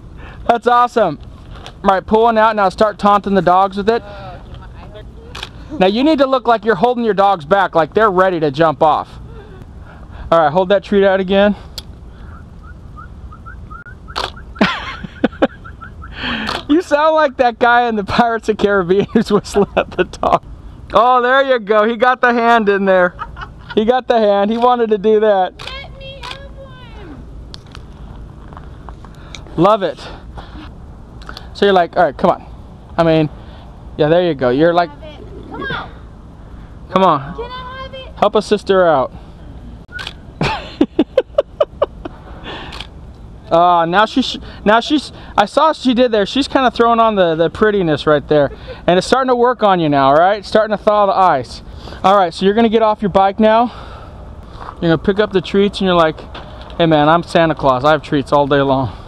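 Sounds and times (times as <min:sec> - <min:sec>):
person whistling rising chirps: 0:12.2 - 0:14.6, 0:15.5 - 0:16.2
person laughing: 0:14.3 - 0:16.7, 0:19.0 - 0:20.4, 0:23.0 - 0:23.9, 0:40.4 - 0:42.7.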